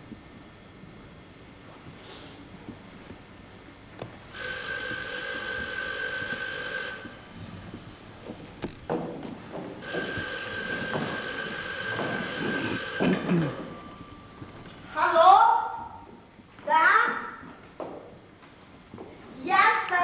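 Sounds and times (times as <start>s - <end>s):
telephone ringing: 4.3s - 8.4s, 9.7s - 14.9s.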